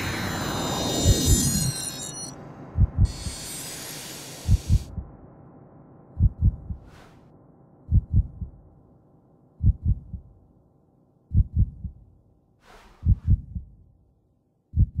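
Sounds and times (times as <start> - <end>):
faint drone: 0.0 - 10.4
deep heartbeat-like thumps: 2.8 - 3.3, 4.4 - 5.2, 6.2 - 7.0, 7.9 - 8.8, 9.6 - 10.4, 11.3 - 12.1, 13.0 - 13.8, 14.8 - 15.0
short hissing whoosh: 3.1 - 4.9, 12.6 - 13.1.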